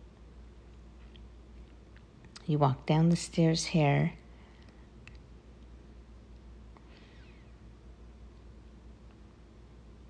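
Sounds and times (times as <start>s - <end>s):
faint low outdoor rumble: 0.0s - 10.0s.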